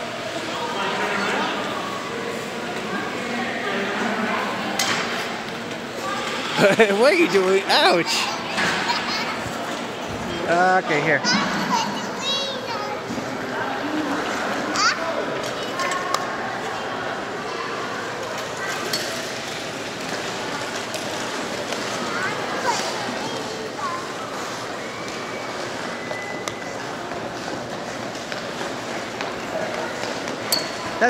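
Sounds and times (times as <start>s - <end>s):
hubbub of indistinct voices: 0.0s - 31.0s.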